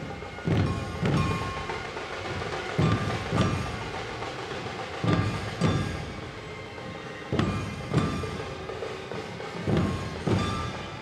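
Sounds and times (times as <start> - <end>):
crowd and street din: 0.0 - 11.0
large barrel drum beat: 0.0 - 11.0.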